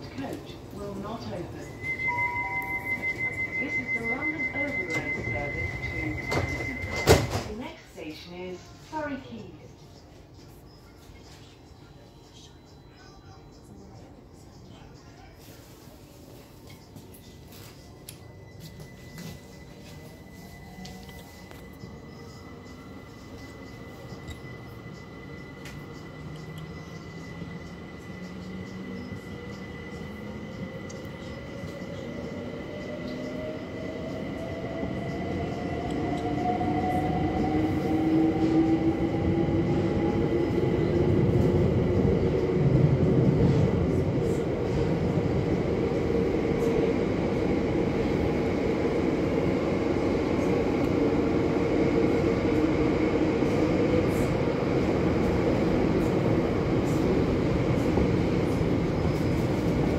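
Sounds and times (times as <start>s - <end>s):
train running low rumble: 0.0s - 59.9s
thin high tone: 1.8s - 6.9s.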